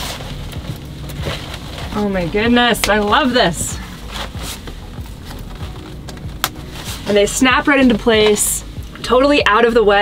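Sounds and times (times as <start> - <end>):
fabric rustling and scraping: 0.0 - 9.8.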